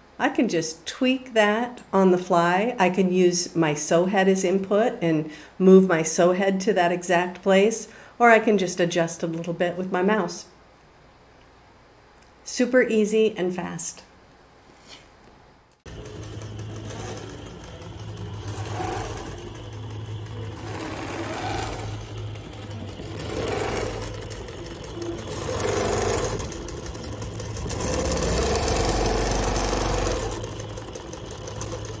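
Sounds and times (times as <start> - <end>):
quilting machine humming and whirring: 15.8 - 32.0.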